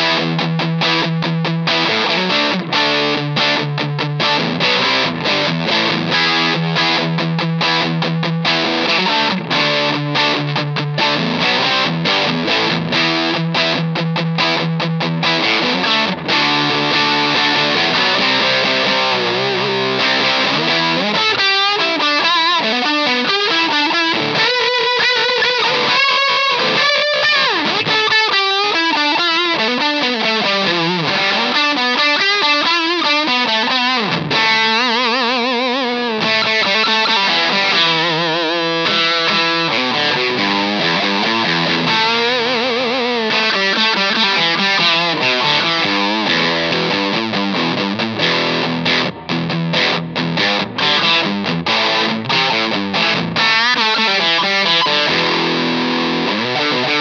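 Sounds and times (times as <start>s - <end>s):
fuzzed electric guitar: 0.0s - 57.0s.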